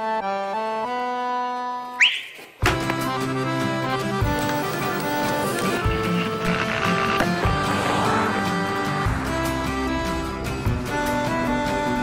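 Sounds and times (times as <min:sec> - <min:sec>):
accordion holding a chord: 0:00.0 - 0:01.9, 0:02.8 - 0:12.0
rising whistle sound effect: 0:02.0 - 0:02.4.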